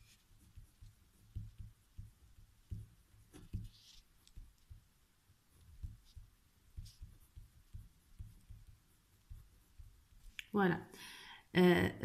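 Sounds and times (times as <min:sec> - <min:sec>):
pen scratching on paper: 0:00.0 - 0:04.9, 0:05.5 - 0:10.4
soft low thumps of hand and pen: 0:00.0 - 0:10.5.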